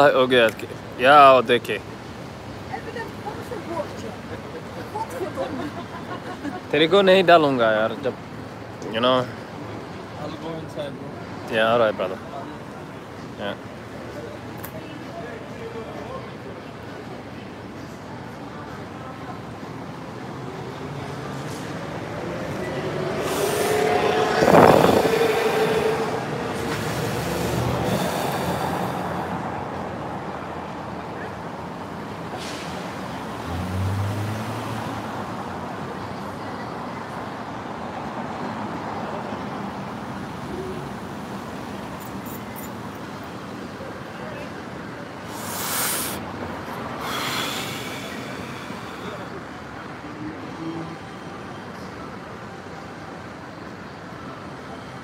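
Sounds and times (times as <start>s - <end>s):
cars passing: 0.0s - 55.0s
people's voices: 0.0s - 55.0s
vehicle sound gliding in pitch: 22.3s - 28.1s.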